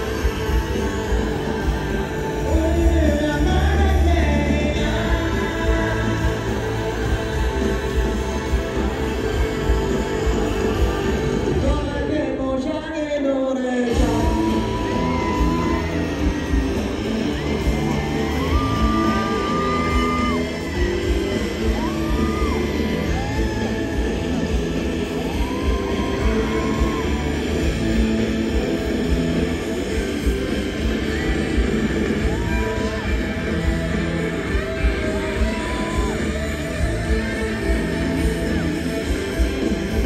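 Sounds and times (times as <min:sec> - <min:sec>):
live rock band over loudspeakers: 0:00.0 - 0:40.0.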